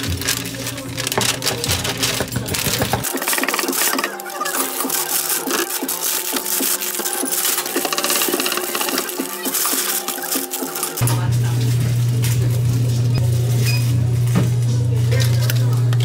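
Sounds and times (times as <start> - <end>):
paper bag rustling: 0.0 - 15.8
cellophane crinkling: 0.0 - 15.9.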